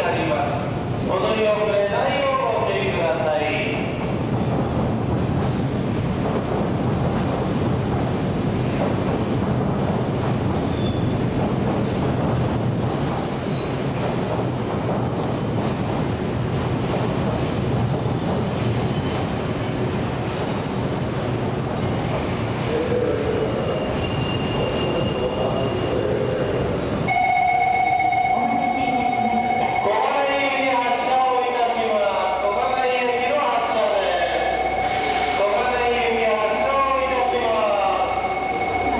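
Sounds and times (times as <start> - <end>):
train wheels rumbling on track: 0.0 - 38.9
high steady squeal: 37.1 - 38.9.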